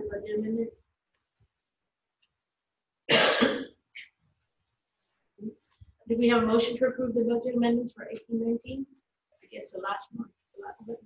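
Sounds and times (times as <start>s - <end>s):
person coughing: 3.1s - 4.1s.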